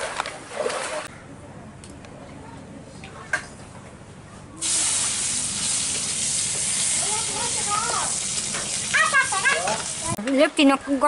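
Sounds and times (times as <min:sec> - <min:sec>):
food sizzling in a pan: 0:04.6 - 0:10.2.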